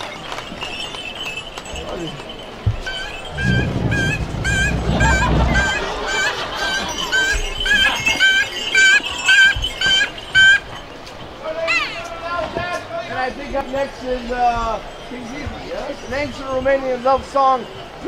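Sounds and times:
short honking notes: 2.9s - 6.3s
low drum rumble: 3.3s - 6.4s.

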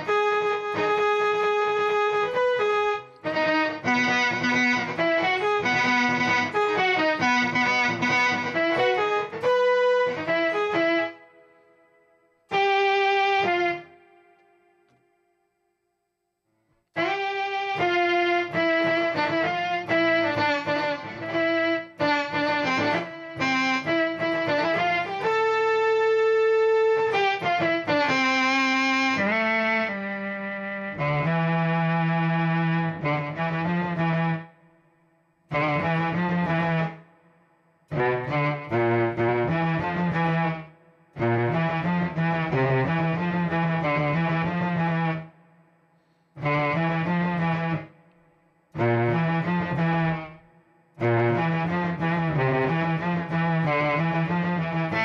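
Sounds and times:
electric guitar with string voice: 0.0s - 15.1s, 17.0s - 34.7s, 35.5s - 37.1s, 37.9s - 45.5s, 46.4s - 55.0s.

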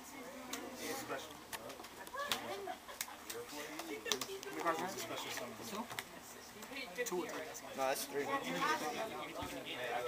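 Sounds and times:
background chatter of voices: 0.0s - 10.0s.

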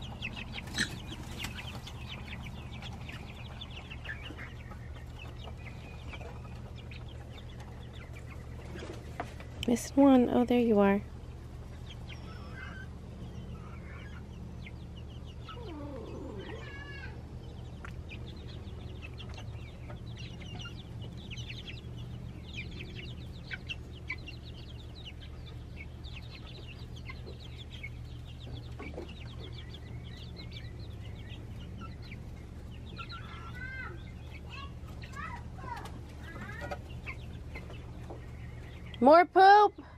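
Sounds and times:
chicks cheeping and clucking: 0.0s - 39.9s.

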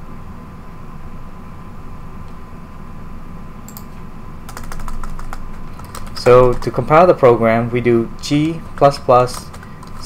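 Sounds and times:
low background hum: 0.0s - 10.0s
computer keyboard typing: 4.5s - 7.1s, 8.2s - 10.0s.

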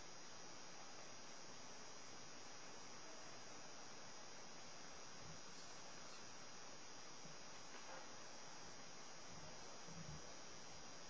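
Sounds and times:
faint steady hiss: 0.0s - 11.0s
thin high-pitched whine: 0.0s - 11.0s.

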